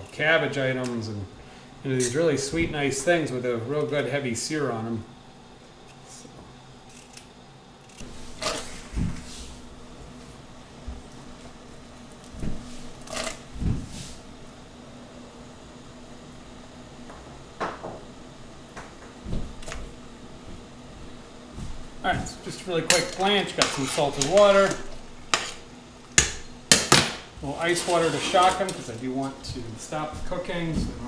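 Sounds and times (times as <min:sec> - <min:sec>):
steady low hum: 0:00.0 - 0:31.0
knife on plastic cutting board: 0:23.6 - 0:25.6.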